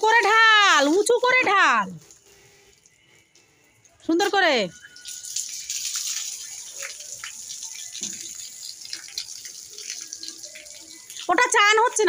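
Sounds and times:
water splashing on concrete: 0:00.1 - 0:03.0, 0:04.1 - 0:12.0.

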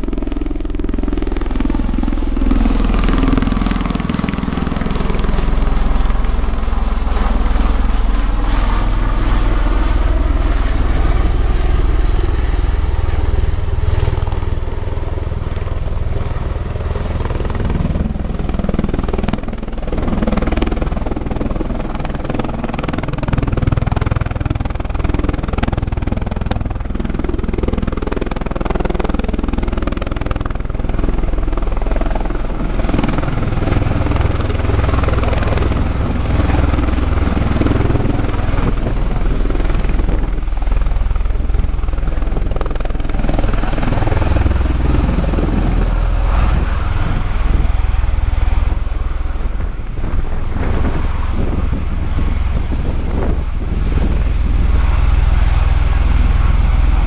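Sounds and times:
tiltrotor aircraft flying low: 0:00.0 - 0:57.0.

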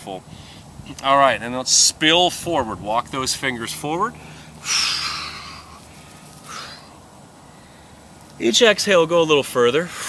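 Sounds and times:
man breathing out: 0:04.2 - 0:08.0.

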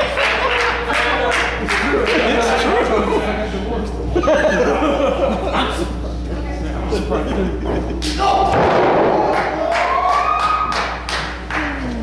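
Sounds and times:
person yelling: 0:08.2 - 0:08.5.

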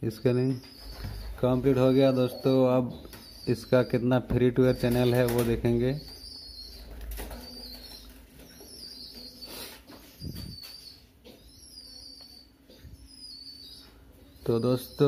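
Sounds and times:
small birds chirping: 0:00.0 - 0:15.0.

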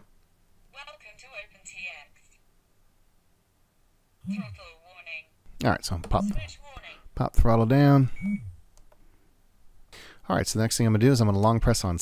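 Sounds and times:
high steady beep: 0:04.3 - 0:04.6, 0:06.2 - 0:06.5, 0:08.1 - 0:08.6.

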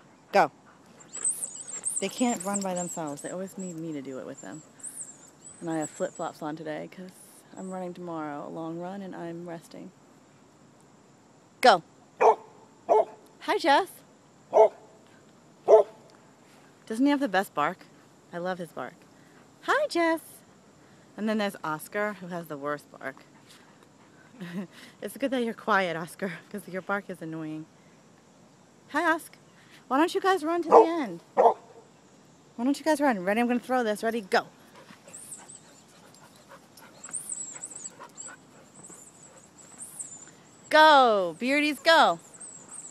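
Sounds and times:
dog panting: 0:00.4 - 0:05.1, 0:34.6 - 0:40.2, 0:41.5 - 0:42.9
thin high chirping: 0:01.0 - 0:06.3, 0:35.1 - 0:42.9
dog barking: 0:12.2 - 0:13.2, 0:14.5 - 0:14.8, 0:15.7 - 0:16.0, 0:30.7 - 0:31.7.

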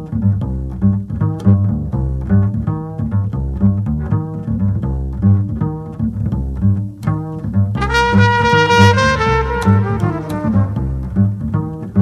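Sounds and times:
bass repeating low pattern: 0:00.0 - 0:12.0
trumpet held note: 0:07.8 - 0:10.8.

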